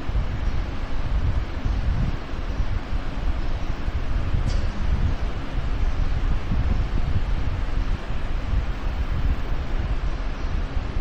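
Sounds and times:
low rumbling noise: 0.0s - 11.0s
wind hiss on microphone: 0.0s - 11.0s.

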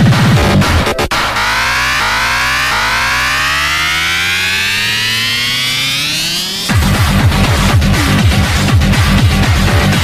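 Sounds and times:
low bass tone: 0.4s - 9.9s
rising synth tone: 0.6s - 7.1s.

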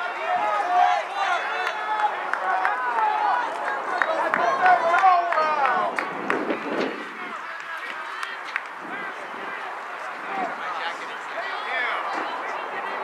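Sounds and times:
people shouting: 0.0s - 5.9s
quiet chatter: 0.0s - 13.0s.

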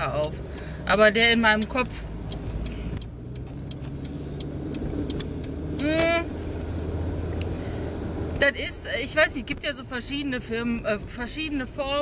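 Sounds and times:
car engine hum: 0.0s - 12.0s
road noise inside car: 0.0s - 12.0s.

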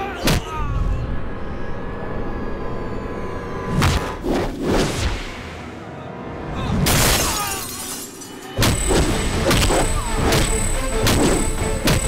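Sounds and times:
swish effects: 3.7s - 5.8s
punch effects: 8.6s - 12.0s.

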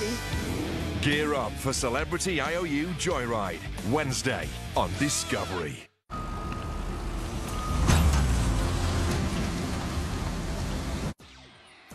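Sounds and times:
heavy machinery engine rumble: 6.3s - 11.2s.

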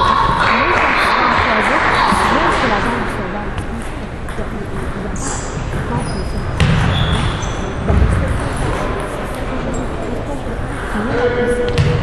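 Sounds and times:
short high squeaks: 5.2s - 7.8s.

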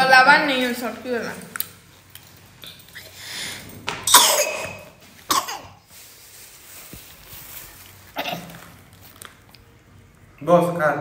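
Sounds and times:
small child coughing: 4.1s - 5.8s, 8.2s - 8.6s.

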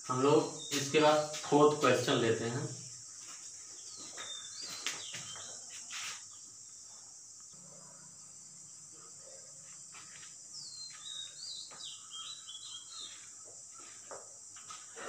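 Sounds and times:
high-pitched insect drone: 0.0s - 15.0s
falling bird chirps: 3.8s - 6.6s, 10.1s - 14.0s.

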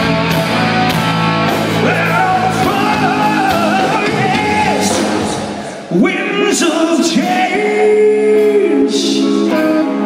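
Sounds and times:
electric guitar chords: 0.0s - 10.0s
hard rock band playing live: 0.0s - 10.0s
male lead vocal: 1.7s - 10.0s.

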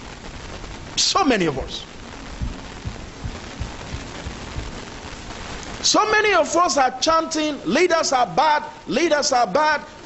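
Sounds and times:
steady hiss-like noise: 0.0s - 10.0s
man's voice: 1.0s - 1.9s, 5.8s - 10.0s
soft low thumps: 2.1s - 5.3s.

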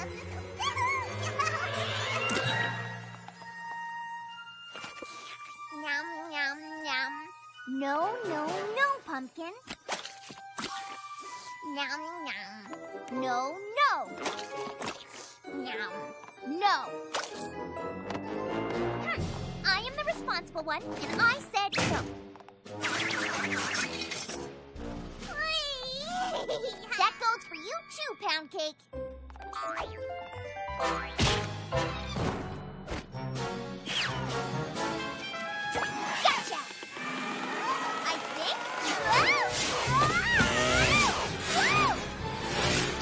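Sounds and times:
light cartoon music: 0.0s - 43.0s
cartoon pony squealing: 39.0s - 42.0s.

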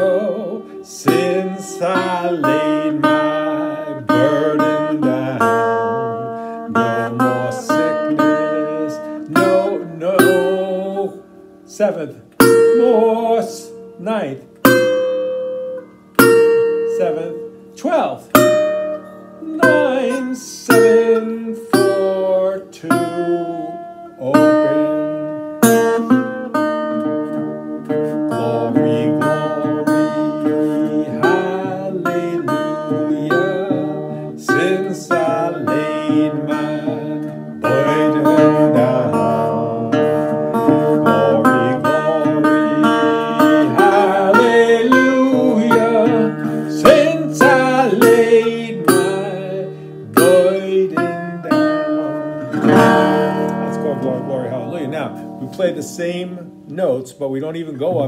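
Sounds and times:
fingerpicked resonator guitar: 0.0s - 58.0s.

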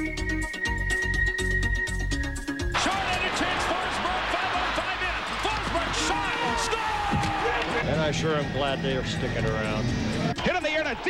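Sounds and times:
arena crowd noise: 2.8s - 11.0s.

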